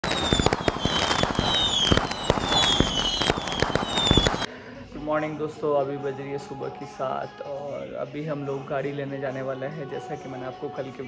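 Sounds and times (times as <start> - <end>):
falling whistles: 0.0 - 4.5
firecrackers cracking: 0.0 - 4.5.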